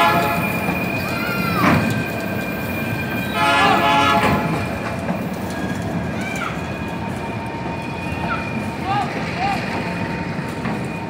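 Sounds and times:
train wheels clattering on rails: 0.0s - 11.0s.

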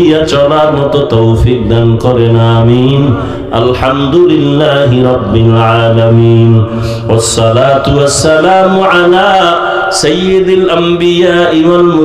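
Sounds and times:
man chanting into a microphone: 0.0s - 12.0s.

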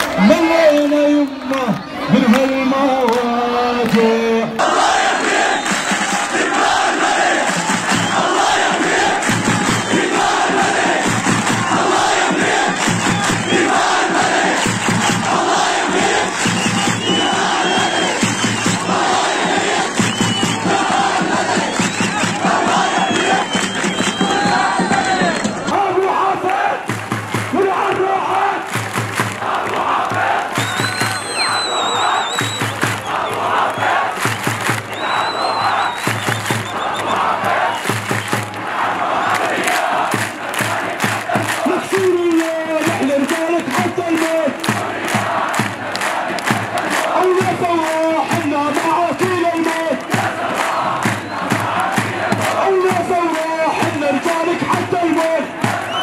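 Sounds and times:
crowd shouting together: 0.0s - 56.0s.

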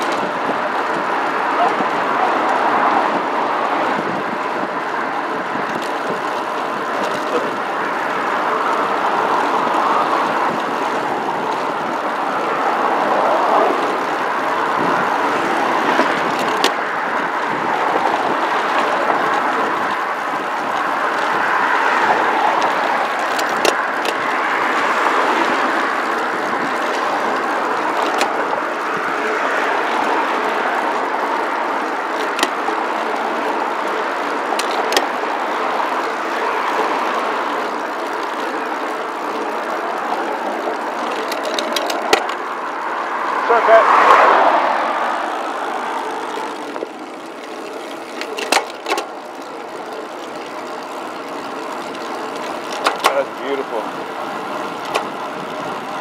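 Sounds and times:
bicycle road noise: 0.0s - 56.0s
traffic passing: 0.0s - 56.0s
wind rushing: 42.8s - 46.0s.

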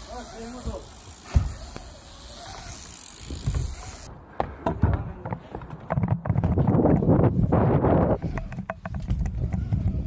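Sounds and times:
bike clicks and knocks: 0.0s - 7.2s, 8.1s - 10.0s
bike tyres rumbling on ramp: 0.0s - 10.0s.

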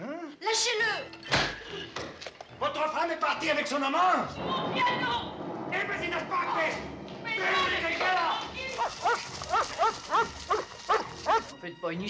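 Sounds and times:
small dog yapping: 8.8s - 11.5s.

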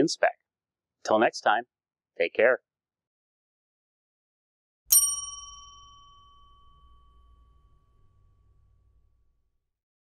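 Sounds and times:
bell-like chime: 4.9s - 9.1s.

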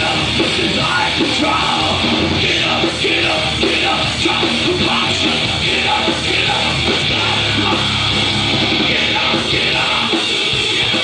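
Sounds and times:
metal band playing live: 0.0s - 11.0s.

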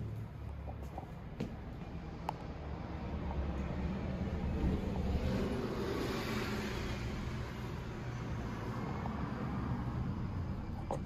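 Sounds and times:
low vehicle rumble: 0.0s - 11.0s
vehicle passing by: 0.0s - 11.0s.

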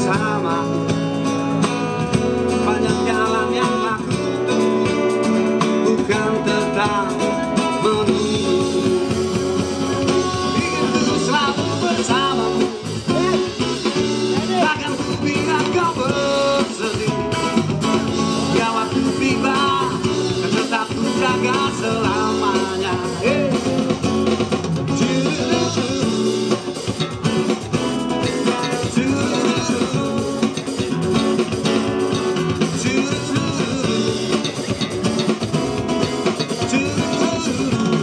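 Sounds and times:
electronic drum kit: 0.0s - 38.0s
man singing: 0.0s - 38.0s
strummed acoustic guitars: 0.0s - 38.0s.

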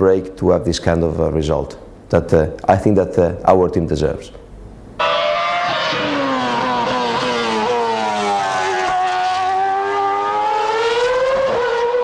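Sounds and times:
racing car engine at high revs: 5.0s - 12.0s.

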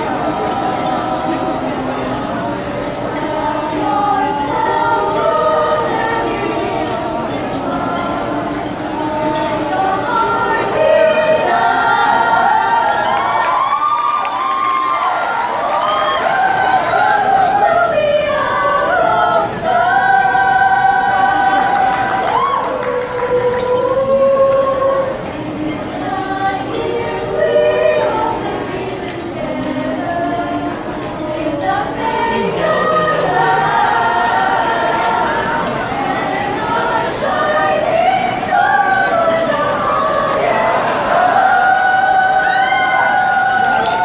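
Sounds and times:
vocal group singing in harmony: 0.0s - 44.0s.

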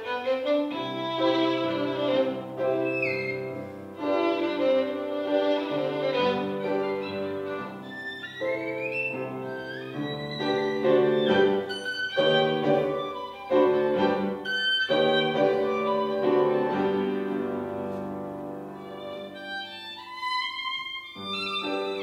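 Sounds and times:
upright piano: 0.0s - 22.0s
violin bowed notes: 0.0s - 22.0s.

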